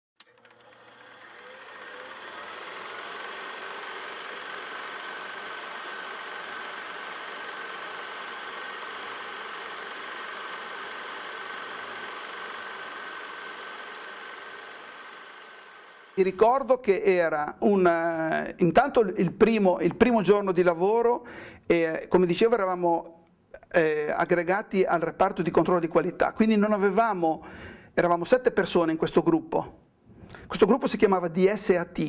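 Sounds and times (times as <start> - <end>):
mechanical running noise with whine: 0.2 - 16.7.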